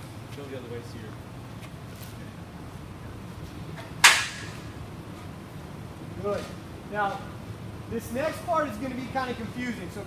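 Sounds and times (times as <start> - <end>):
sharp bang: 4.0 - 4.7.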